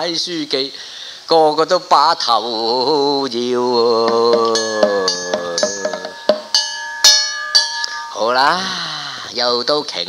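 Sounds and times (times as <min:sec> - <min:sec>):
person singing: 0:02.4 - 0:06.3
gong and drum strokes: 0:04.1 - 0:08.2
hand gong ringing: 0:04.3 - 0:08.5.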